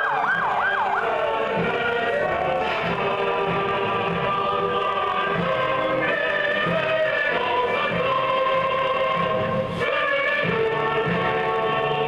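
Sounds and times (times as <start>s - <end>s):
choir singing slow piece: 0.7s - 12.0s.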